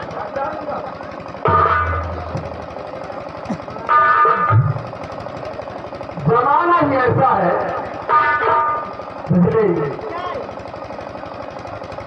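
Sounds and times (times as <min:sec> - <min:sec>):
drum roll: 0:01.4 - 0:02.9
loud sustained chords: 0:01.4 - 0:03.2, 0:03.8 - 0:05.2, 0:06.2 - 0:10.2.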